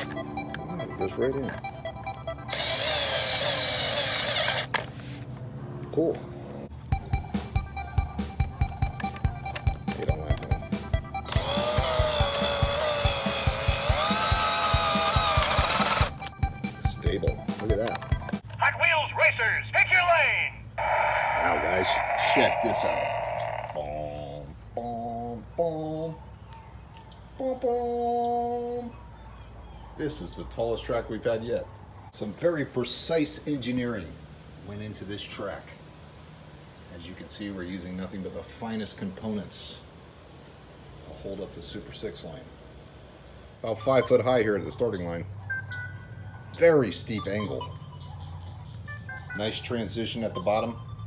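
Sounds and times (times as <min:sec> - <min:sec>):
background music with steady beat: 0:00.0 - 0:02.5, 0:06.7 - 0:18.5
cordless drill driving screw: 0:02.5 - 0:04.8, 0:11.2 - 0:16.3.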